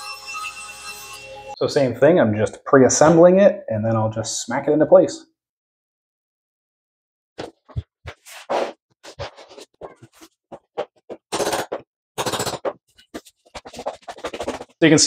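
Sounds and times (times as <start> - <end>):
boards scraping on floor: 8.1 - 10.3, 11.5 - 14.8
floor planks clicking and knocking: 9.1 - 15.0.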